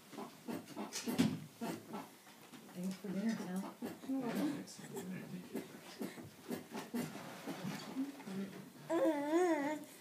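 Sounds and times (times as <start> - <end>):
rocking chair knocking and creaking: 0.9 - 1.5.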